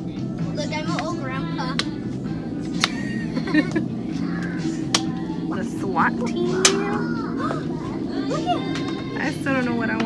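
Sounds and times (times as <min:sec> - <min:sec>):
background music: 0:00.0 - 0:10.0
children chattering: 0:04.2 - 0:09.4.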